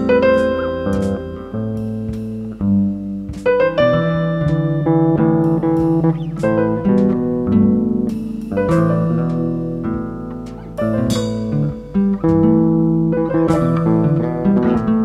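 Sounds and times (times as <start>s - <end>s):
electric bass guitar: 0.0s - 15.0s
piano-like chords: 0.0s - 15.0s.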